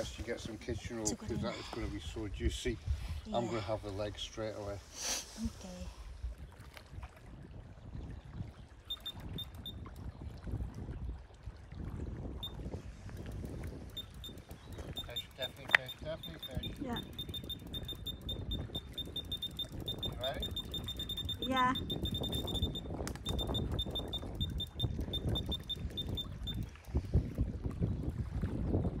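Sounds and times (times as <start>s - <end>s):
wind rumbling on microphone: 0.0s - 29.0s
waves lapping on rocky shore: 21.4s - 21.8s.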